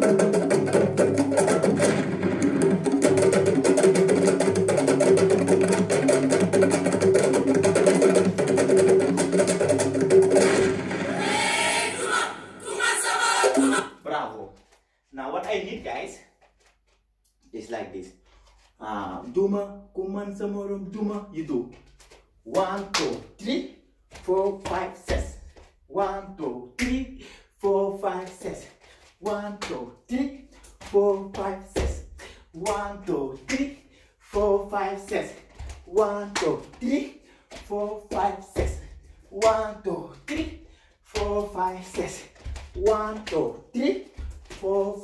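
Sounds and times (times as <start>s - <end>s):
man chanting rhythmic phrases: 13.9s - 16.3s, 17.4s - 18.2s, 18.8s - 45.0s
bare feet thudding on wooden floor: 35.1s - 44.9s.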